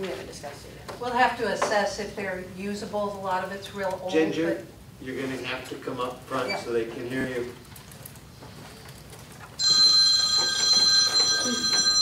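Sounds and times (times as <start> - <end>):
high-pitched electronic ringing tone: 9.6 - 12.0.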